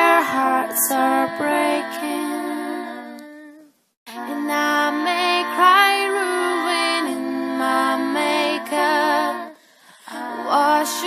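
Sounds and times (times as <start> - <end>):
a cappella female voices: 0.0 - 11.0.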